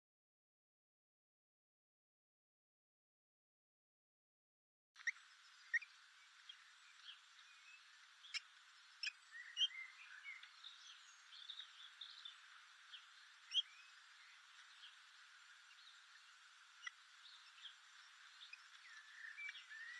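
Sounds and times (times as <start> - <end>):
faint outdoor background hiss: 5.0 - 19.9
high bird chirps: 5.0 - 19.9.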